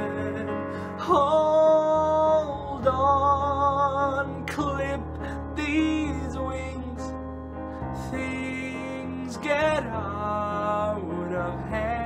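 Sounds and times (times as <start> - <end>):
man singing long held notes: 0.0 - 7.2, 8.0 - 12.0.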